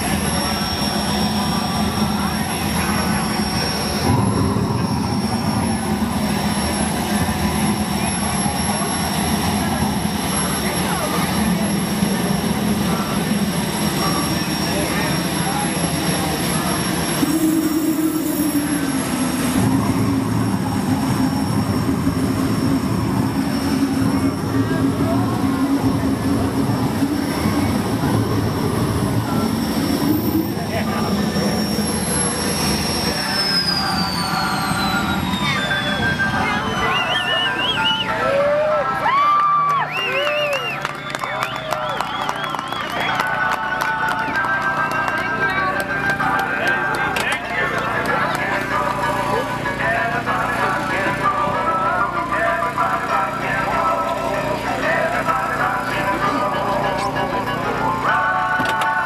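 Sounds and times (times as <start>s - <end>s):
engine-like roar: 0.0s - 59.0s.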